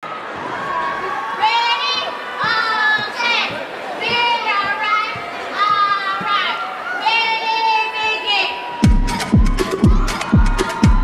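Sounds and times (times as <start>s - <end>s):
high-pitched voices shouting: 1.0s - 11.0s.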